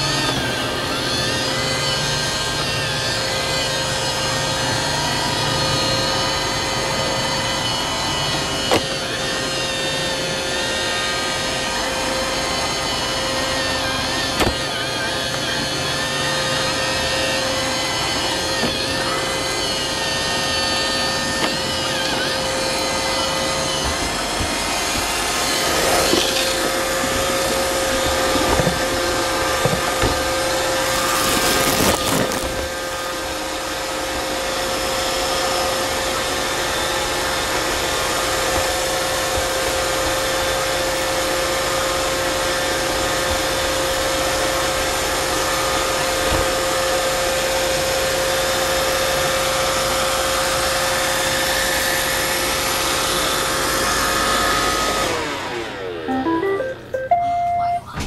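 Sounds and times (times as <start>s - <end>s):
robot vacuum motor and brushes: 0.0s - 56.9s.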